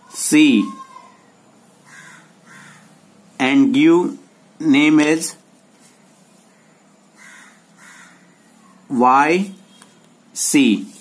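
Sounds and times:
faint crow caws: 0:00.6 - 0:03.0, 0:05.9 - 0:08.8.

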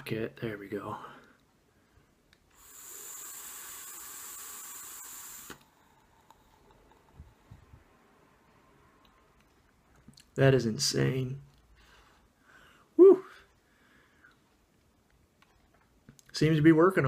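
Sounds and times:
atomizer firing hiss: 0:02.5 - 0:05.8.

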